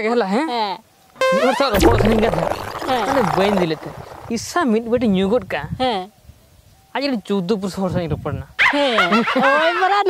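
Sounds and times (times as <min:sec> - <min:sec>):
voice giving short pitched calls: 0:01.7 - 0:04.5.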